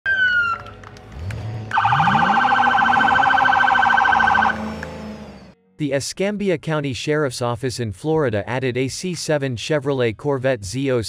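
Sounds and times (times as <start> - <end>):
police siren wailing: 0.1 - 0.8, 1.7 - 5.6
car engine revving: 0.8 - 5.6.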